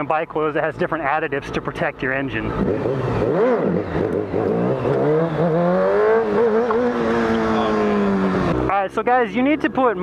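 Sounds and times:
motorcycle engine running: 2.4 - 10.0.

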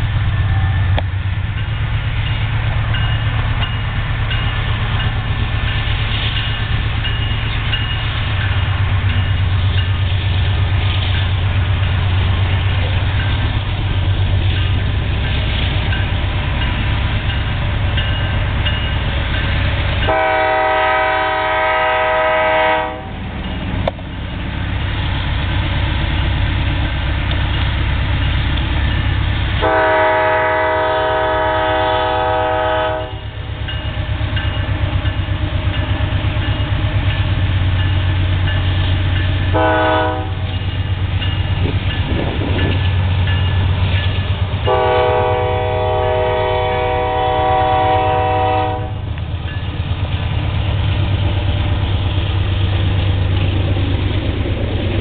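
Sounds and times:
diesel locomotives rumbling: 0.0 - 55.0
train air horn blasts: 20.0 - 23.2, 29.6 - 33.3, 39.5 - 40.4, 44.7 - 49.0.

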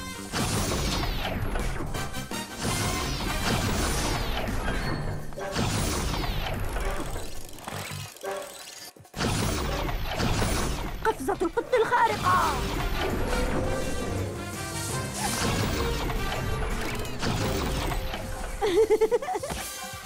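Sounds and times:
cartoon action music: 0.0 - 20.0.

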